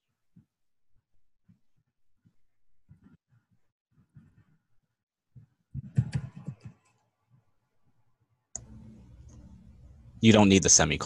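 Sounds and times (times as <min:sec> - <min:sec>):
steady low hum: 0:08.6 - 0:11.0.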